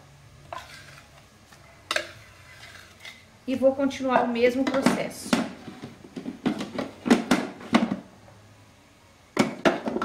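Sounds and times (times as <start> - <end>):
plastic bowl knocking on plastic basin: 4.6 - 8.1.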